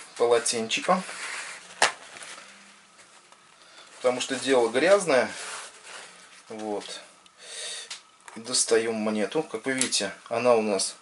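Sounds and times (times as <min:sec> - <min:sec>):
cloth rustling: 0:00.0 - 0:07.0.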